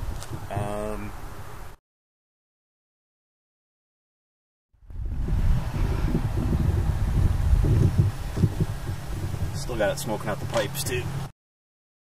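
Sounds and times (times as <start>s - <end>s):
wind on microphone: 0.0s - 1.8s, 4.8s - 11.3s
car exhaust rumble: 4.9s - 11.3s.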